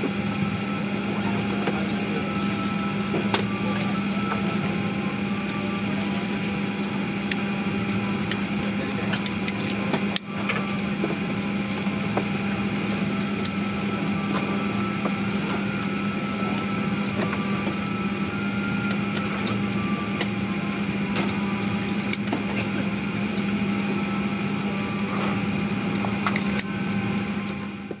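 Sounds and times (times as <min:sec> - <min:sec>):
airplane cabin hum: 0:00.0 - 0:28.0.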